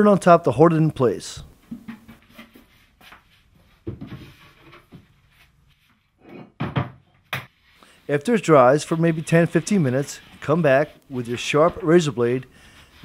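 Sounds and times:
wooden knocks and thumps: 1.7s - 2.6s, 3.8s - 5.0s, 6.3s - 7.5s.

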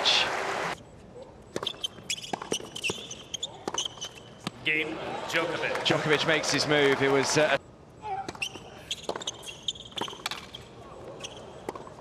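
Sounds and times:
shoes squeaking on court: 1.0s - 4.6s, 8.1s - 12.0s
racket strikes and ball bounces: 1.5s - 4.6s, 8.2s - 12.0s.

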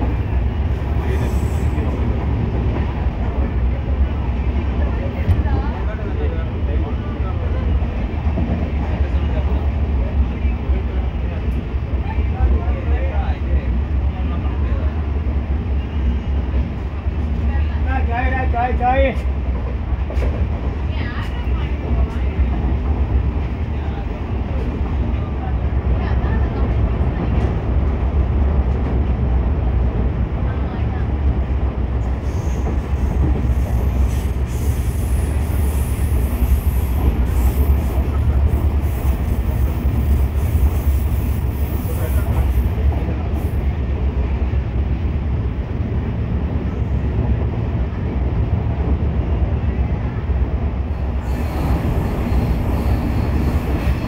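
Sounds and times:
train wheels rumbling on track: 0.0s - 54.0s.

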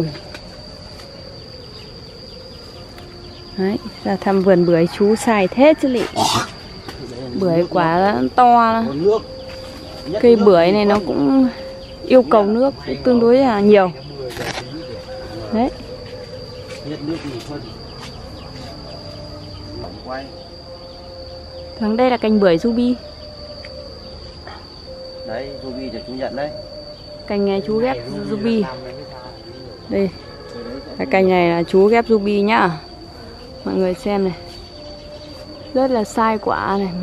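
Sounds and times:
high-pitched insect drone: 0.0s - 37.0s.

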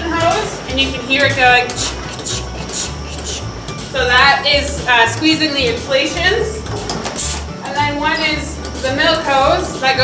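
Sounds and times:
milking machine pulsator: 0.0s - 10.0s.

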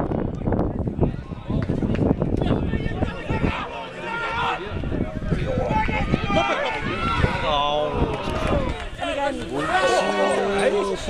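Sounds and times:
voices shouting over one another: 2.4s - 11.0s.

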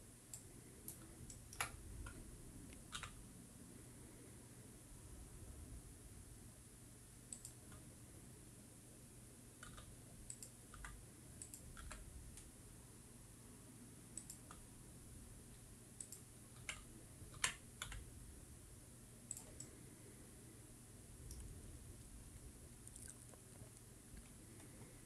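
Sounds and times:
keyboard and mouse clicks: 0.3s - 2.2s, 2.8s - 3.2s, 7.3s - 7.8s, 9.6s - 12.5s, 14.2s - 14.6s, 16.0s - 18.0s, 19.3s - 19.8s.

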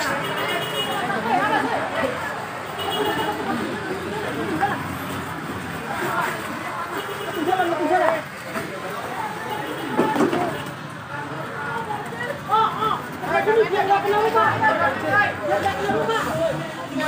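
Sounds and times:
outdoor background noise: 0.0s - 17.0s
voices talking and calling out: 0.0s - 17.0s.

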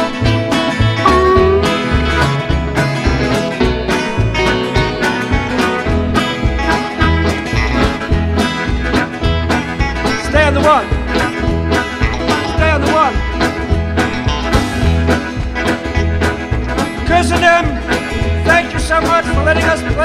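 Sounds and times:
electric guitar lead with bends: 0.0s - 20.0s
live blues band playing: 0.0s - 20.0s.

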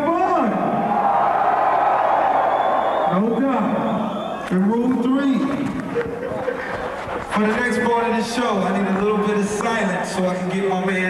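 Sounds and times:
man speaking into a microphone: 0.0s - 0.8s, 3.1s - 5.8s, 7.3s - 11.0s
crowd cheering and yelling: 0.0s - 11.0s.

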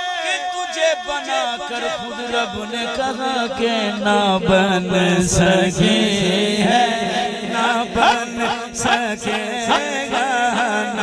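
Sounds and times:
man singing through microphone: 0.0s - 11.0s.

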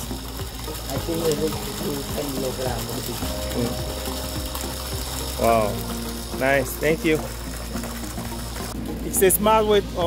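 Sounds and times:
water jetting into tank: 0.0s - 10.0s.

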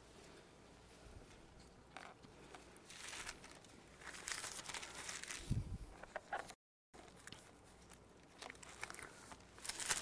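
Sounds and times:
thin pages turning and rustling: 2.9s - 5.5s, 6.3s - 10.0s.

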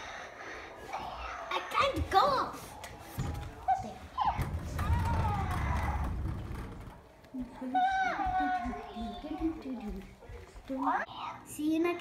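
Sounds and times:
toy car rumbling on wooden floor: 4.2s - 7.2s.

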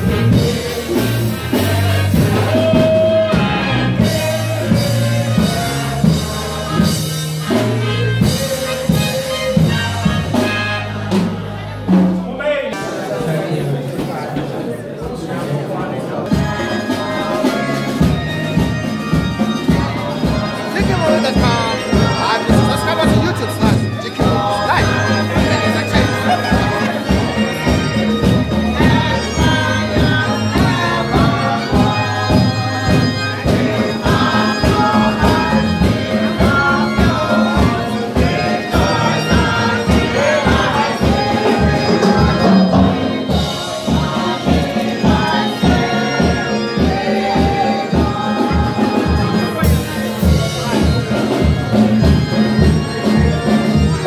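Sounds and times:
instrumental accompaniment: 0.0s - 54.0s
keyboard and drum kit playing: 0.0s - 54.0s
steady beat: 0.0s - 54.0s
voices singing held notes: 0.0s - 54.0s.

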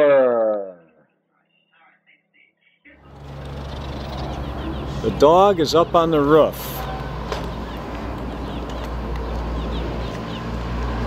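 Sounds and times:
small birds chirping: 2.4s - 11.0s
car engine idling: 3.0s - 10.4s.

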